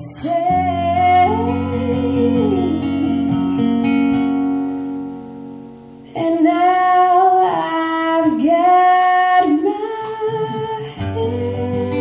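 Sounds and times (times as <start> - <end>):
woman singing: 0.0 - 3.7, 6.1 - 12.0
acoustic guitar strumming: 0.0 - 6.0.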